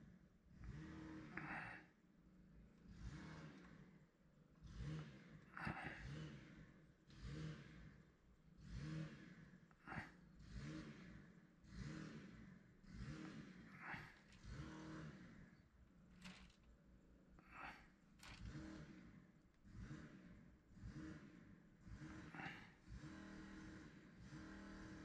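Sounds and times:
small engine revving: 0:00.0 - 0:01.9, 0:02.5 - 0:25.0.

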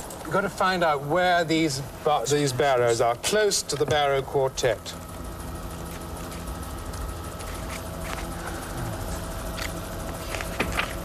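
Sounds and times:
helicopter engine and rotor: 0:00.0 - 0:11.0.

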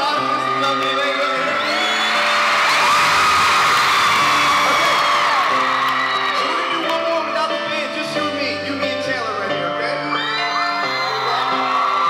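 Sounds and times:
crowd screaming and cheering: 0:00.0 - 0:08.7, 0:09.6 - 0:12.0
live pop band playing: 0:00.0 - 0:12.0.

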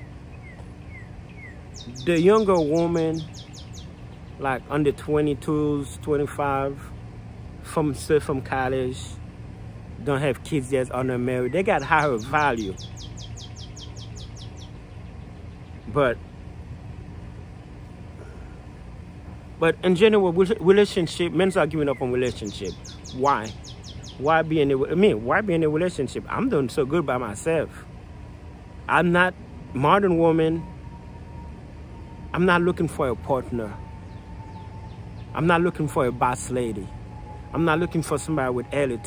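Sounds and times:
birds chirping: 0:00.0 - 0:39.0
low background rumble: 0:00.0 - 0:39.0
songbird singing: 0:00.0 - 0:39.0.

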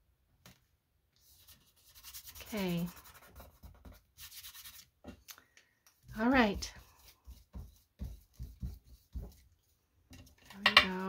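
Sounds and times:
fingertips rubbing paper: 0:01.3 - 0:04.9.

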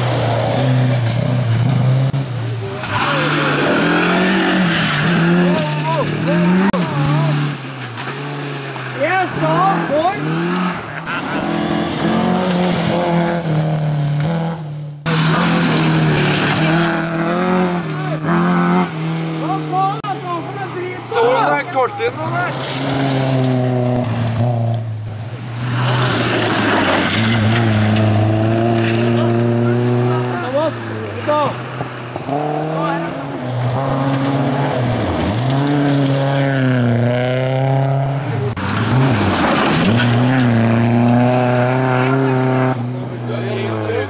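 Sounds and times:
rally car engines at high revs: 0:00.0 - 0:44.0
tyres on gravel: 0:00.0 - 0:44.0.

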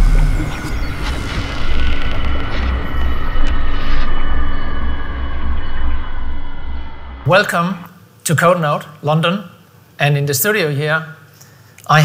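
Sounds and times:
deep pulsing rumble: 0:00.0 - 0:07.3
sustained high tones: 0:00.0 - 0:07.9.

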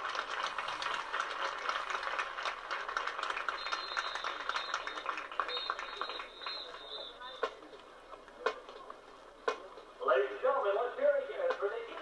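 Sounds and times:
audience applauding: 0:00.0 - 0:07.3.

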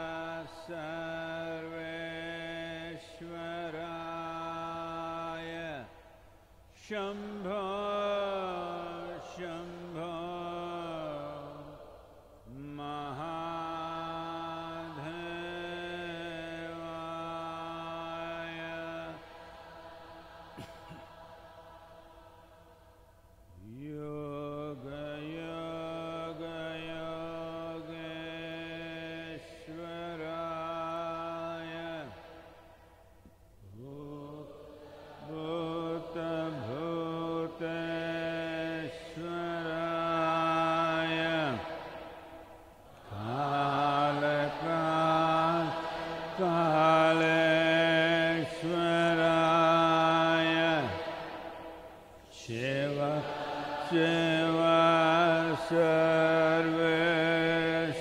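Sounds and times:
man chanting in low voice: 0:00.0 - 0:58.0.

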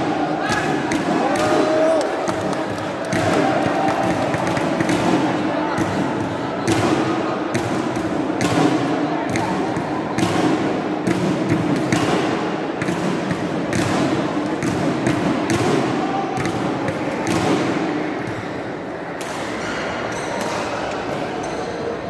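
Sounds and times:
murmur of crowd voices: 0:00.0 - 0:22.0
rackets hitting shuttlecocks: 0:00.4 - 0:18.5.

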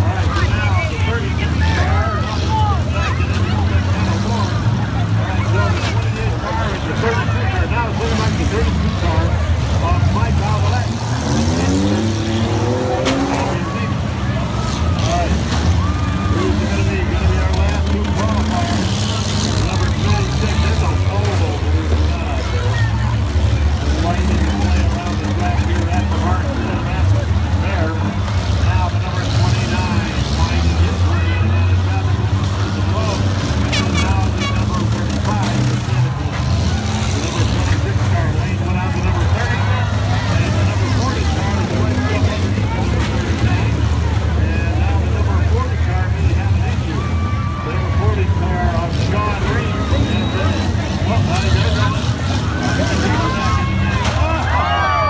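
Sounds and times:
car engines revving: 0:00.0 - 0:55.0
crowd chatter: 0:00.0 - 0:55.0.

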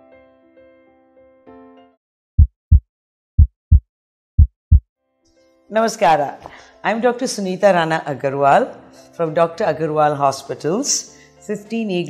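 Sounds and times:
heartbeat thumps: 0:02.4 - 0:02.8, 0:03.4 - 0:04.8.

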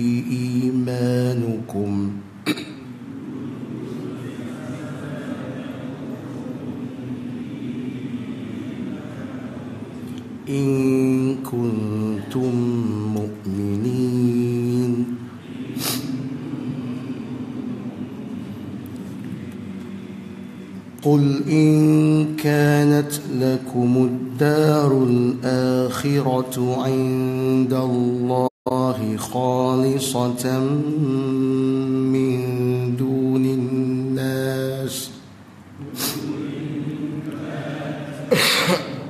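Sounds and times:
man reciting melodically: 0:00.0 - 0:18.0, 0:19.7 - 0:39.0
low room noise rumble: 0:00.0 - 0:39.0.

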